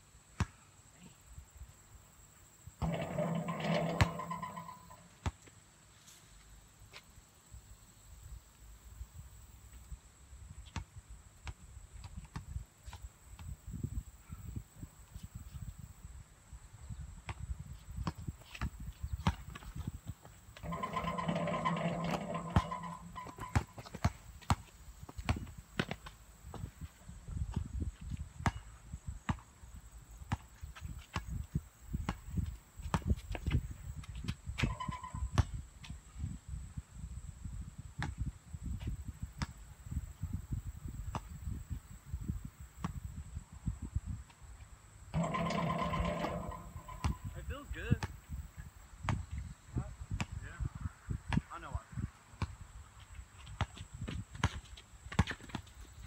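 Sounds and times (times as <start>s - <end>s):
basketball bouncing on asphalt: 2.8s - 5.5s, 18.0s - 26.8s, 27.5s - 28.7s, 30.3s - 35.6s, 45.2s - 47.3s, 49.0s - 49.3s, 52.4s - 52.6s, 53.4s - 55.8s
wind rumble on microphone: 13.4s - 20.2s, 26.5s - 44.6s, 45.4s - 52.9s.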